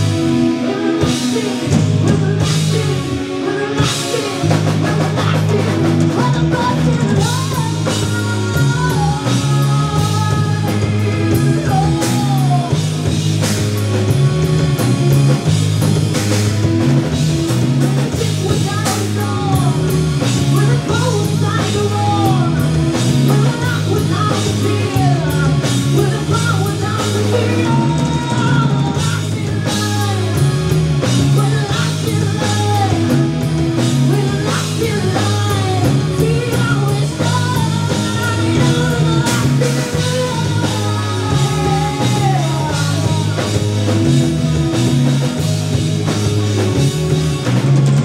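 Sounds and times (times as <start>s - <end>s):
lead singer singing: 0.0s - 15.5s, 16.5s - 47.8s
bass guitar: 0.0s - 48.0s
drum kit: 0.0s - 48.0s
electric guitar: 0.0s - 48.0s.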